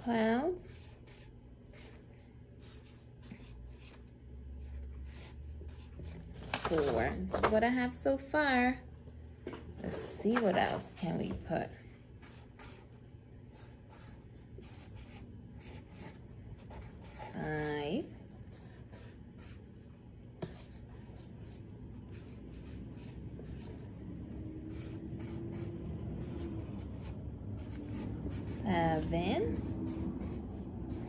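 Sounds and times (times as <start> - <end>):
marker pen scratching on paper: 0.1 - 7.1, 12.2 - 23.9, 24.6 - 31.0.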